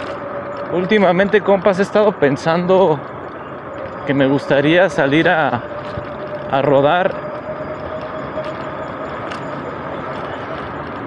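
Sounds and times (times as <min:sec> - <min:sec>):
faint steady whine: 0:00.0 - 0:11.0
wind and road noise: 0:00.0 - 0:11.0.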